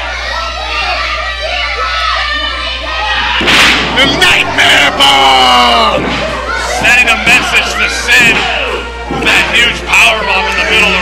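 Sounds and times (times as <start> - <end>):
crowd shouting: 0.0 - 11.0.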